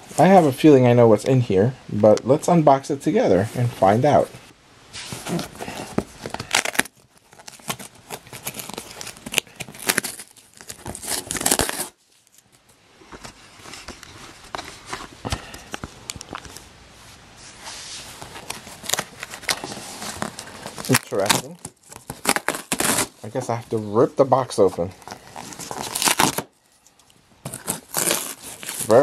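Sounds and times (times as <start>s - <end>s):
cardboard box being torn open: 5.2s - 12.0s, 18.2s - 23.2s, 25.0s - 26.5s, 27.4s - 29.0s.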